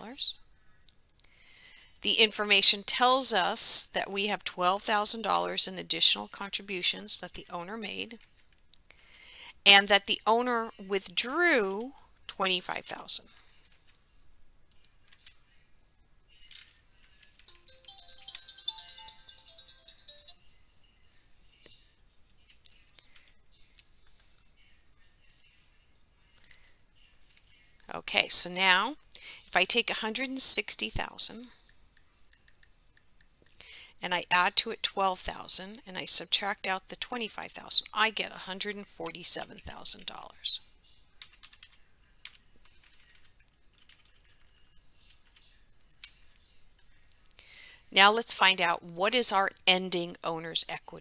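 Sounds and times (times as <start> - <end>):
keyboard typing: 17.2 - 20.4, 41.2 - 44.6
fast high clicks: 17.4 - 20.4.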